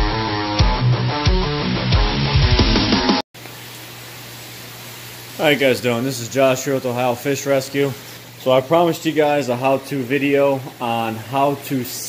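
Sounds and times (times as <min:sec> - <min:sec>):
room hiss: 0:03.4 - 0:12.0.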